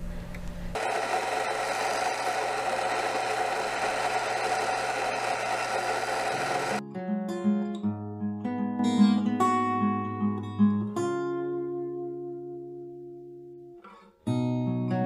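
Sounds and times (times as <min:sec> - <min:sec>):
coffee grinder whirring: 0:00.8 - 0:06.8
acoustic guitar music: 0:06.8 - 0:15.0.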